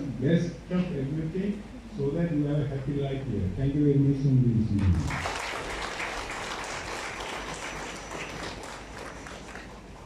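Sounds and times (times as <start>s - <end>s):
audience applauding: 4.8s - 10.0s.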